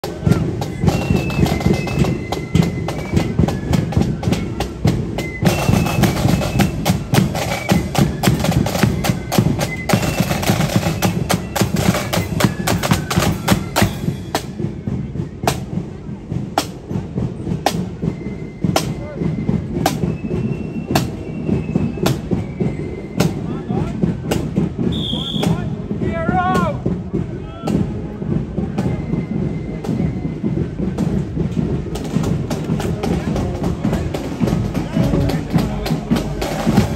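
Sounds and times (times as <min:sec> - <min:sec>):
flutes playing a tune: 0:00.0 - 0:36.9
snare and bass drums marching: 0:00.0 - 0:36.9.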